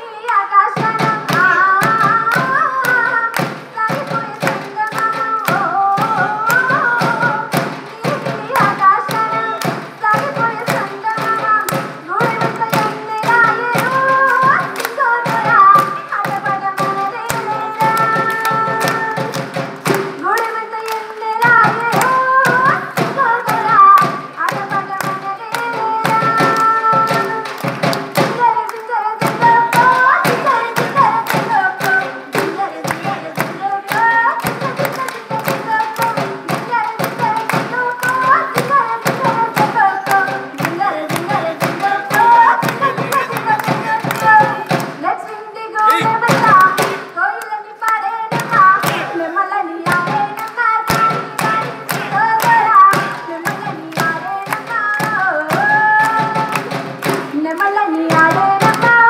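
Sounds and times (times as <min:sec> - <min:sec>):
woman singing: 0:00.0 - 0:59.0
sharp percussive beat: 0:00.7 - 0:59.0.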